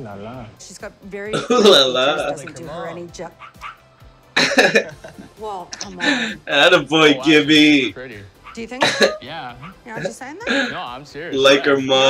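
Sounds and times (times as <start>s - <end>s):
background music: 0.0s - 12.0s
tv show audio: 0.0s - 12.0s.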